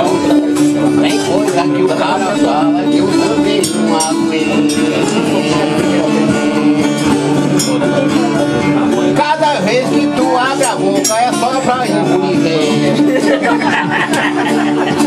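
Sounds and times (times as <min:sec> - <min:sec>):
person singing: 0:00.0 - 0:15.0
plucked ten-string viola: 0:00.0 - 0:15.0.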